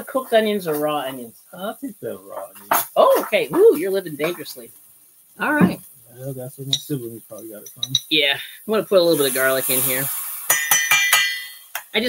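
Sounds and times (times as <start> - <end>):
metal spoon clinking on glass jar: 10.5 - 11.9.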